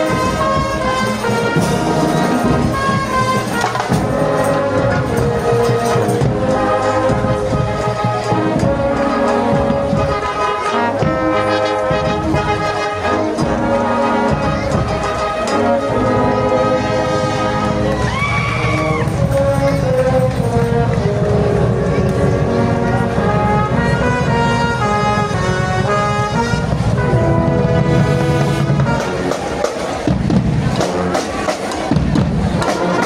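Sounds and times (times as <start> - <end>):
marching band brass chords: 0.0 - 33.0.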